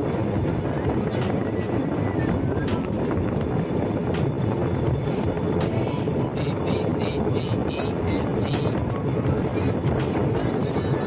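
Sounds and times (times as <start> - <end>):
engine and wheels rumbling: 0.0 - 11.0
wind: 0.0 - 11.0.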